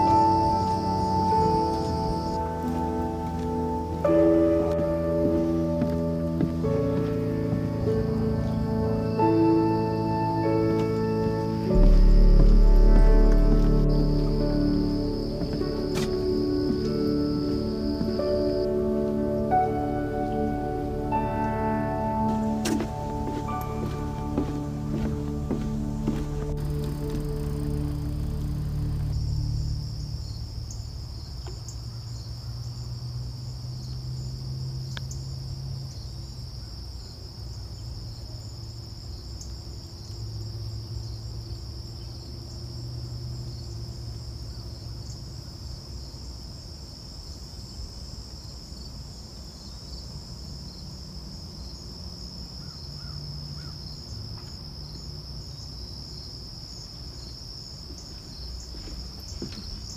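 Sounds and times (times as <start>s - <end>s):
low uneven rumble: 0.0s - 31.4s
crickets trilling: 0.0s - 59.9s.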